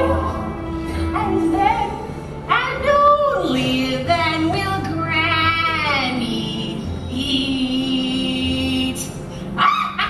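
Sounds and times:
musical accompaniment: 0.0 - 10.0.

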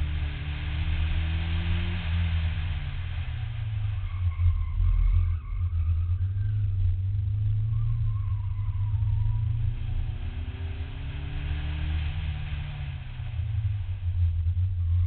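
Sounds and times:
car engine accelerating: 0.0 - 15.0
wind rumble on microphone: 0.0 - 15.0.

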